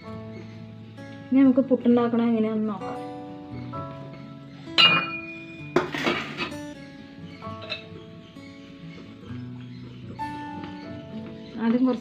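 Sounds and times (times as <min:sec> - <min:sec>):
background music with sustained notes: 0:00.0 - 0:12.0
metal kitchenware clinking: 0:04.8 - 0:06.7, 0:07.4 - 0:08.0.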